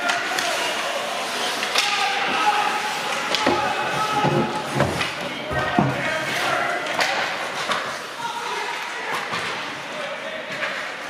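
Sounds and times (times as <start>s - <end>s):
hockey sticks and puck clacking: 0.0s - 11.0s
voices calling in arena: 0.0s - 11.0s
skates scraping ice: 0.1s - 11.0s.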